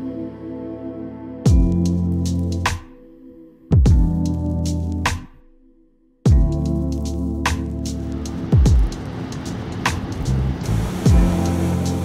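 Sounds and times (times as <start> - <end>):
music beat with deep bass: 1.5 - 3.0, 3.7 - 5.4, 6.3 - 12.0.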